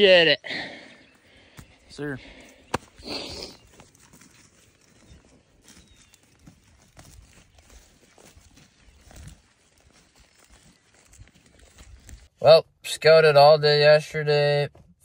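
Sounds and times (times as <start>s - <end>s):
footsteps in a field: 0.5s - 12.4s.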